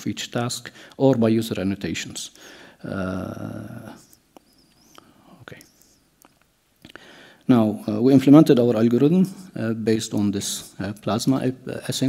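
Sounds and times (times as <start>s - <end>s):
person softly speaking: 5.2s - 6.0s.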